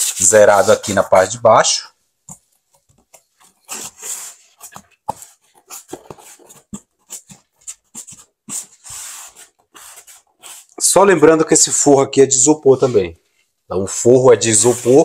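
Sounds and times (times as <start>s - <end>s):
foam board creaking and rubbing: 0.0s - 1.4s, 2.9s - 10.8s, 13.8s - 15.0s.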